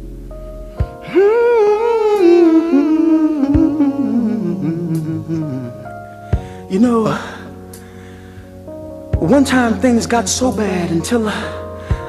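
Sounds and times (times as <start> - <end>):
sustained keyboard chords: 0.0 - 12.0
man singing through vocal processor: 1.0 - 6.0, 6.7 - 7.6.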